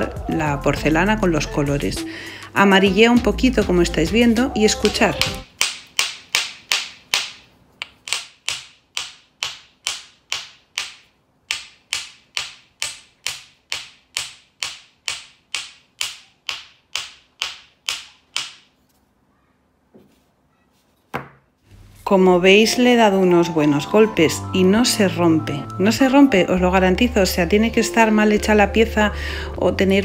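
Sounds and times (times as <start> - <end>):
small hammer tapping hard clay: 4.8 - 18.7.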